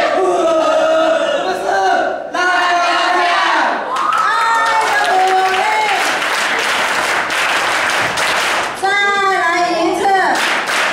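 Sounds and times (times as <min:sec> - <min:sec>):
group shouting a cheer: 0:02.4 - 0:06.1.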